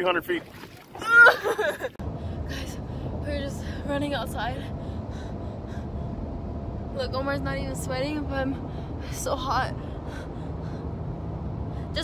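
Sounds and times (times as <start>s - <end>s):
car cabin rumble and hiss: 1.1s - 12.0s.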